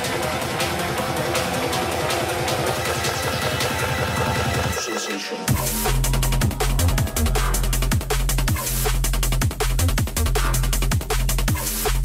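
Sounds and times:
fast electronic club music: 0:00.0 - 0:12.0.

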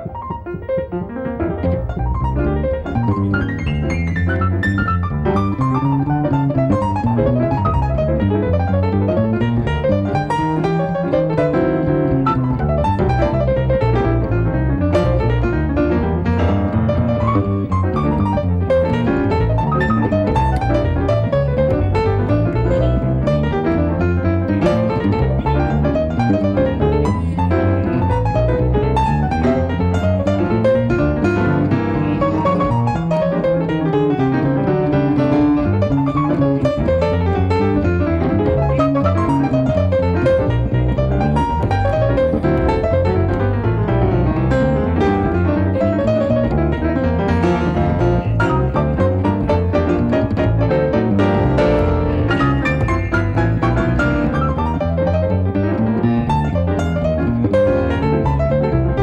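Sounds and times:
jazz piano runs: 0:00.0 - 0:59.0
plucked double bass line: 0:00.0 - 0:59.0.

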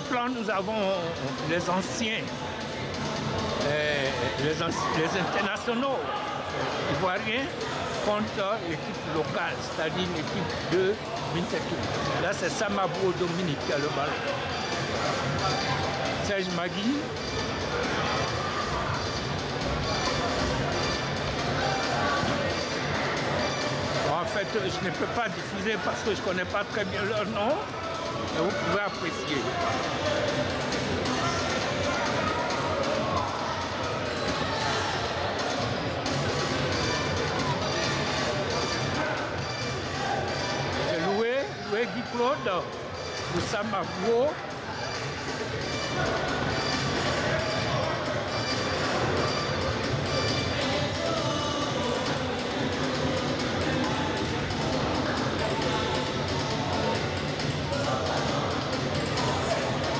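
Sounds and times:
background music: 0:00.0 - 0:59.9
indistinct voices in a hall: 0:00.0 - 0:59.9
indoor futsal game: 0:00.0 - 0:59.9
music with singing voice: 0:49.9 - 0:59.9.

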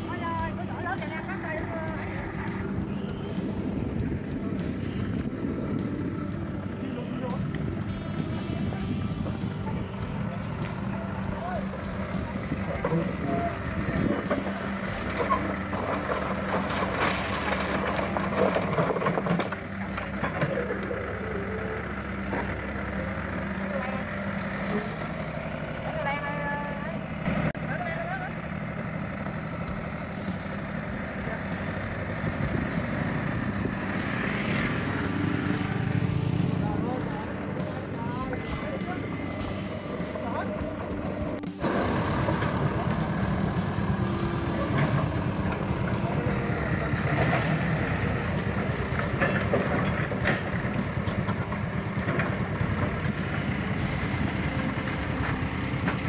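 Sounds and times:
people talking: 0:00.0 - 0:15.5, 0:19.8 - 0:25.0, 0:25.8 - 0:27.0, 0:27.6 - 0:28.4, 0:31.1 - 0:31.7, 0:34.8 - 0:41.6, 0:42.3 - 0:53.4
engine hum: 0:00.0 - 0:56.0.

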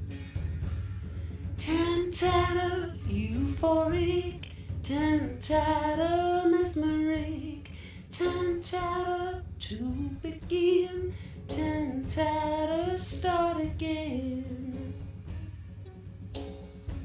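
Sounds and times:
low continuous musical backing: 0:00.0 - 0:17.0
woman singing: 0:01.6 - 0:15.1.

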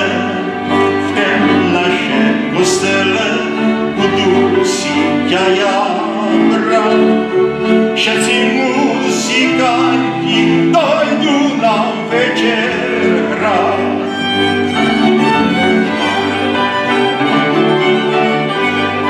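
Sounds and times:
man singing: 0:00.0 - 0:14.2
folk band on fiddles and cimbalom: 0:00.0 - 0:19.0.

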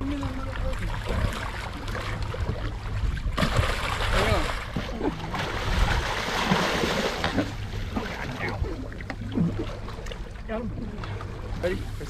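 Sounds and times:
water splashing beside boat hull: 0:00.0 - 0:12.0.

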